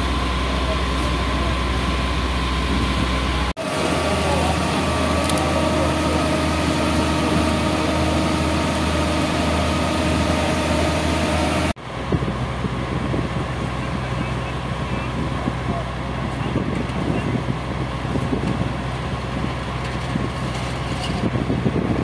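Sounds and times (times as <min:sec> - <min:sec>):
fire engine motor running: 0:00.0 - 0:22.0.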